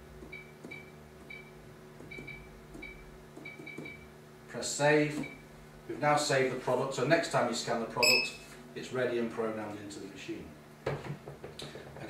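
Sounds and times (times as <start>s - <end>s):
short electronic key-press beeps: 2.1s - 4.0s, 8.0s - 8.4s.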